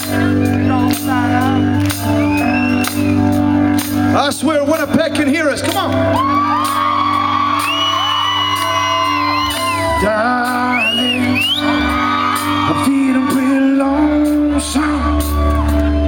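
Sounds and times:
country band playing: 0.0s - 16.0s
crowd whooping: 1.4s - 3.7s, 6.1s - 16.0s.

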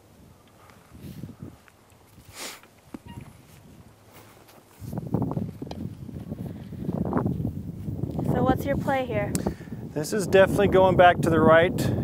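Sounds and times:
wind buffeting microphone: 0.0s - 12.0s
short hiss: 2.2s - 2.7s.

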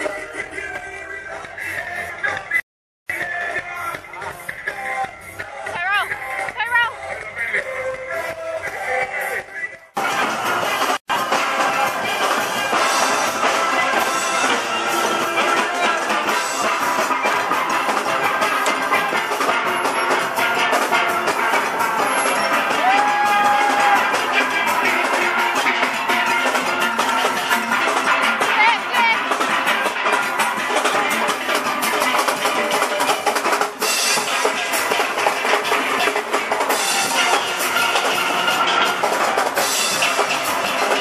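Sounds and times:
drum kit beat: 0.0s - 41.0s
steel band playing: 10.0s - 41.0s.

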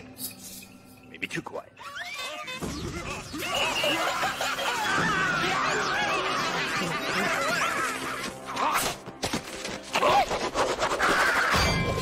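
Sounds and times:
people laughing: 3.0s - 8.7s.

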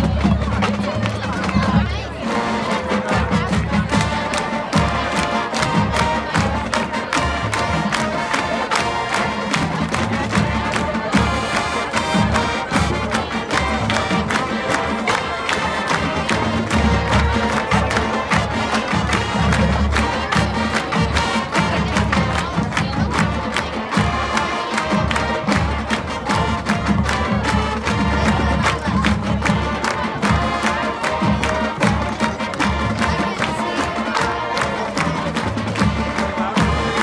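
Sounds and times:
crowd noise: 0.0s - 37.0s
marching band playing: 0.0s - 37.0s
steady drum beat: 2.6s - 37.0s.

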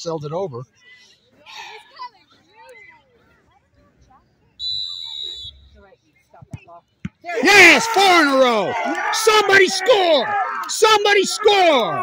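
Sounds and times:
referee's whistle blast: 4.6s - 5.8s.

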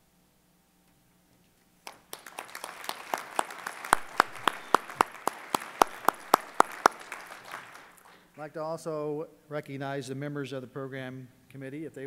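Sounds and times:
loud close hand clapping: 1.8s - 8.2s
audience applause: 1.9s - 8.1s.

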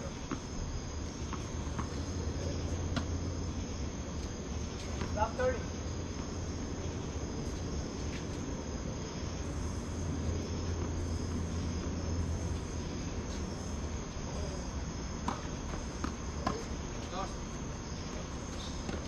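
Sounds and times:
crickets and night insects chirping: 0.0s - 19.0s
low steady hum: 0.0s - 19.0s.

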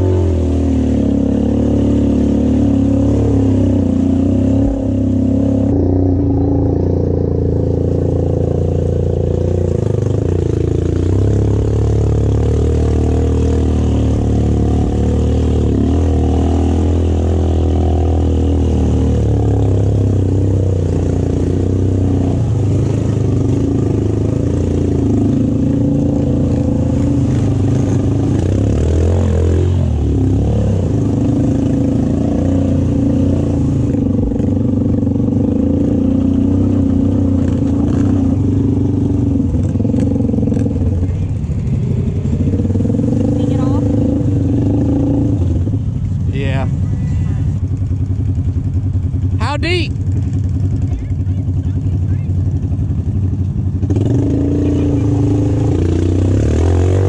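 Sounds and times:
atv engine running under load: 0.0s - 57.0s.

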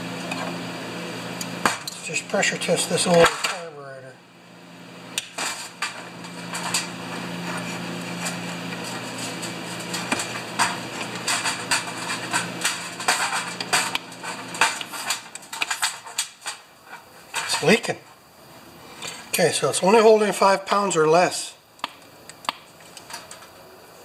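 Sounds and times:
steady low hum: 0.0s - 24.0s
metallic clicks and clatter: 5.2s - 16.6s.

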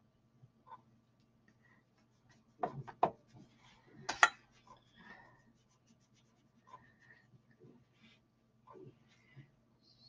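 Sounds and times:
faint low hum: 0.0s - 10.0s
pastel rubbing on paper: 2.0s - 3.8s, 4.5s - 7.2s.

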